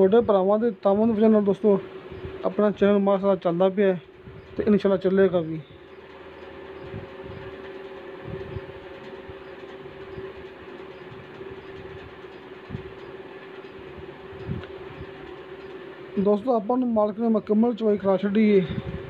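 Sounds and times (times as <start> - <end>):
steady droning hum: 0.0 - 19.0.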